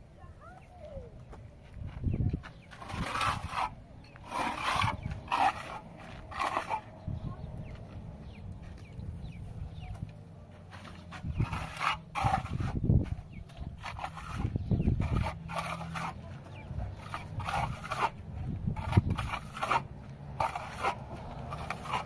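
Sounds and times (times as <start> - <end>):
trowel scraping wet plaster: 2.8 - 7.0, 10.7 - 22.0.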